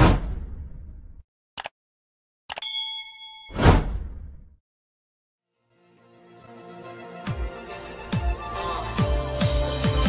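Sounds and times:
bell-like notification ding: 2.6 - 3.6.

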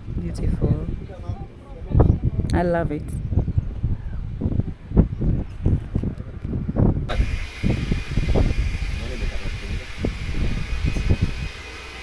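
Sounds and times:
wind buffeting microphone: 0.0 - 12.0
steady hiss: 7.1 - 12.0.

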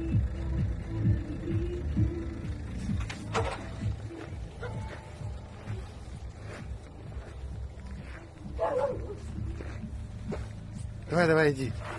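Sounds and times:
steady low rumble: 0.0 - 11.9.

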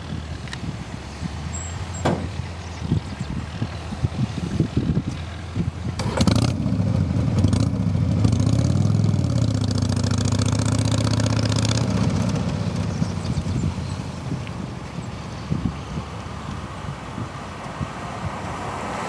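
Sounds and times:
knocks and crackles: 2.0 - 2.4
vehicle engine starting and idling: 5.2 - 14.8.

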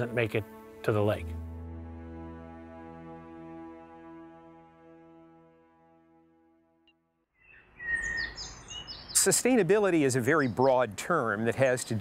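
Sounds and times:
birds chirping: 7.4 - 12.0.

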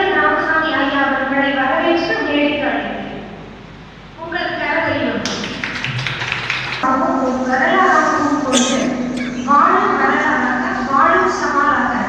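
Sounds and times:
crackly patter of taps: 5.3 - 6.8
woman speaking into a microphone: 6.8 - 12.0.

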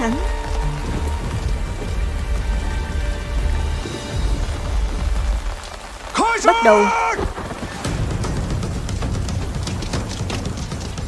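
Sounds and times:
low music drone: 0.0 - 6.1
rain falling on wet ground: 0.0 - 11.0.

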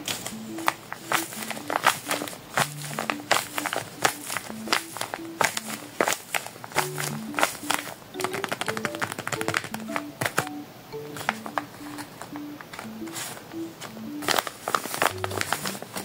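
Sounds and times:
paper squishy crinkling: 0.0 - 10.4, 12.7 - 16.0
background music of plucked notes: 0.0 - 16.0.

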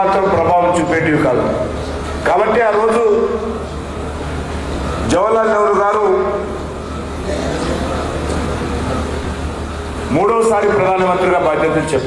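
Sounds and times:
constant low hum: 0.0 - 12.0
meeting hall room noise: 0.0 - 12.0.

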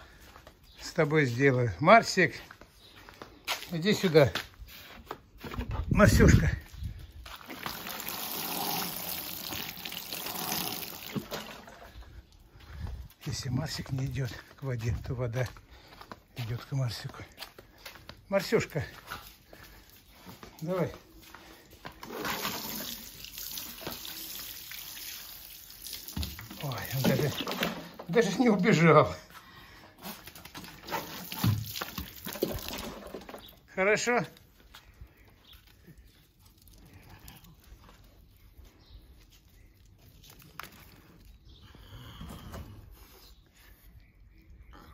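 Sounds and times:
watering can splashing water: 7.3 - 12.0, 22.0 - 28.1, 30.5 - 33.5.

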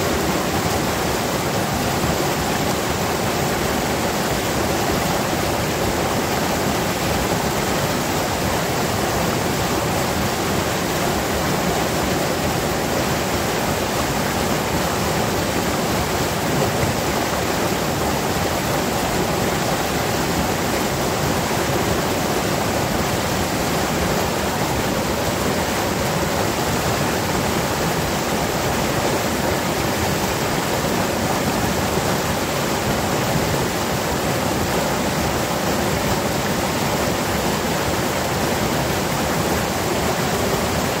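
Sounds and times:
stream rushing over boulders: 0.0 - 41.0.

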